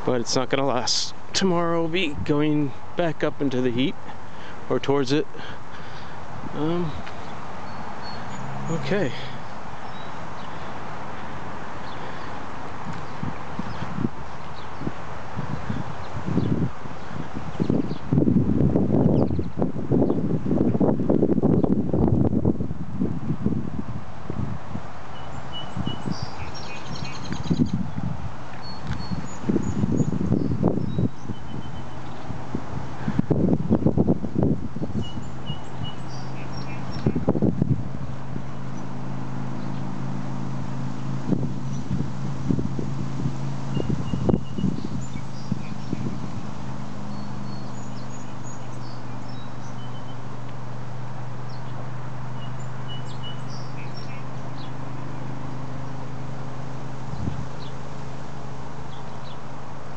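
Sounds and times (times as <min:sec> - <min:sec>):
distant road traffic: 0:00.0 - 0:59.9
steady low hum: 0:00.0 - 0:59.9
bird chirps: 0:06.6 - 0:12.4, 0:25.1 - 0:28.0, 0:28.6 - 0:32.3, 0:34.8 - 0:37.3, 0:43.7 - 0:46.3, 0:47.0 - 0:50.3, 0:51.4 - 0:56.0.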